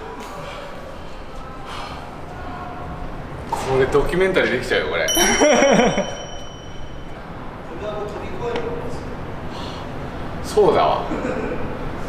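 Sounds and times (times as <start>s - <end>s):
bell-like ding: 5.1s - 7.4s.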